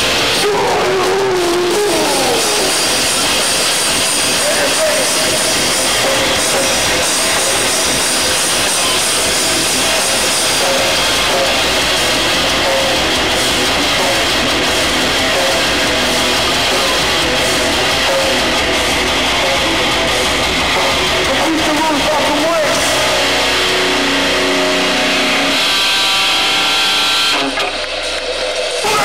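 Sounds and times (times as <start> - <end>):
loud live hardcore band: 0.0 - 29.0.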